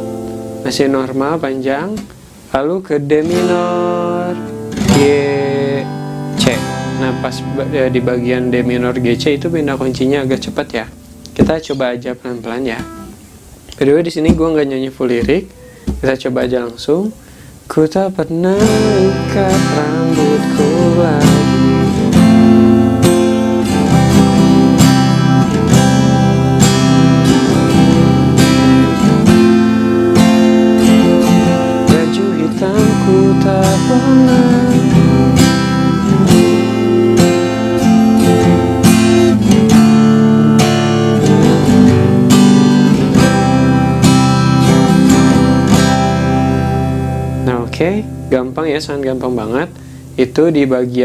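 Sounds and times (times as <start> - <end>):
acoustic guitar strumming: 0.0 - 51.0.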